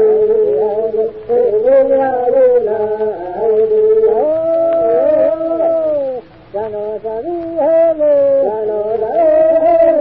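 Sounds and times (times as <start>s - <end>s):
men singing unaccompanied: 0.0s - 10.0s.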